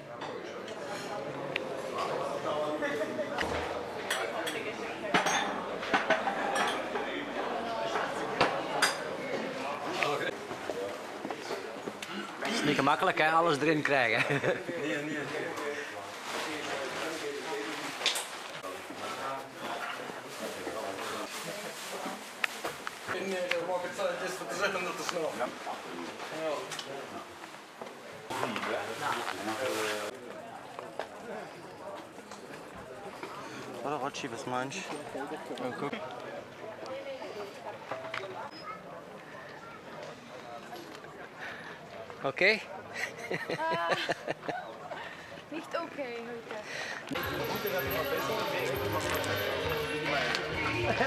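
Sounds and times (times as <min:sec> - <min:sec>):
glasses and crockery clinking: 0:04.1 - 0:06.9, 0:47.1 - 0:50.9
people talking: 0:45.6 - 0:51.0.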